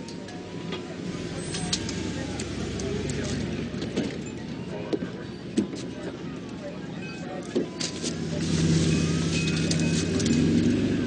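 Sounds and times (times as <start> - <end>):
sirens wailing: 7.8 - 10.4
truck engine running: 7.9 - 11.0.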